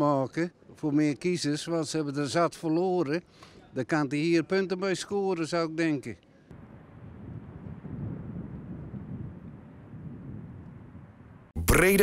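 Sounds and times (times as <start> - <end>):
wind buffeting microphone: 6.5 - 11.6.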